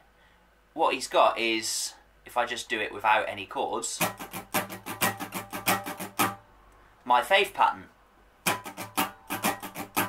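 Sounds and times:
acoustic guitar strumming: 0:04.0 - 0:06.5, 0:08.4 - 0:10.0.

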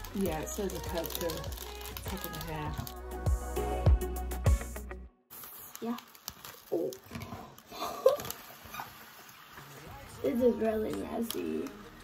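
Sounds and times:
foam beads pouring into cup: 0:00.0 - 0:03.2, 0:05.3 - 0:12.0
background music with beat: 0:00.0 - 0:05.1.

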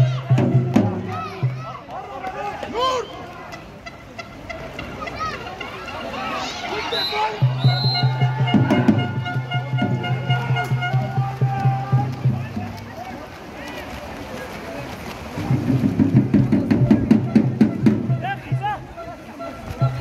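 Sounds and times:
music: 0:00.0 - 0:01.6, 0:07.4 - 0:12.9, 0:15.5 - 0:18.8
crowd chanting and shouting: 0:00.0 - 0:20.0.

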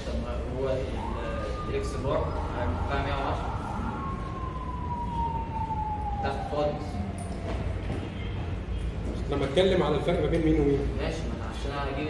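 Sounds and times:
high whistling tone falling in pitch: 0:00.4 - 0:08.4.

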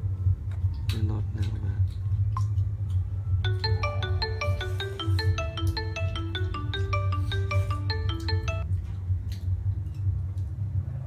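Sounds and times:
marimba-like electronic tune: 0:03.4 - 0:08.7.

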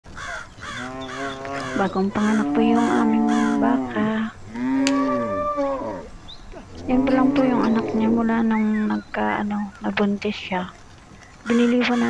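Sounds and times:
crow cawing: 0:00.1 - 0:04.0, 0:04.6 - 0:06.1, 0:11.5 - 0:12.0.

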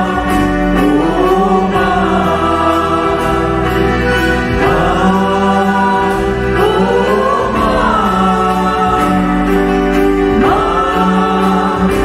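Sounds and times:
accordion: 0:00.0 - 0:12.0
acoustic guitar: 0:00.0 - 0:12.0
choir singing a hymn: 0:00.0 - 0:12.0
keyboard: 0:00.0 - 0:12.0.

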